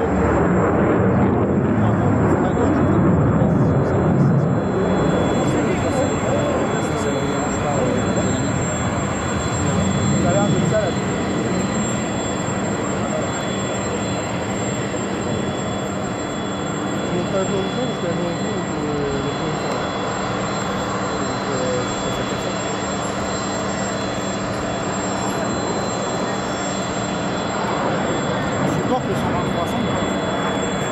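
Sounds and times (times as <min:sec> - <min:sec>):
jet fighter roaring in flight: 0:00.0 - 0:30.9.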